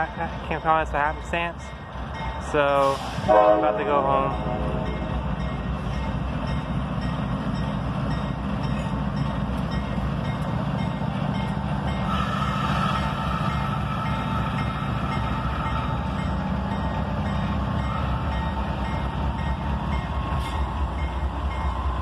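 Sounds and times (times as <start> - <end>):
locomotive engine rumbling: 0.0 - 22.0.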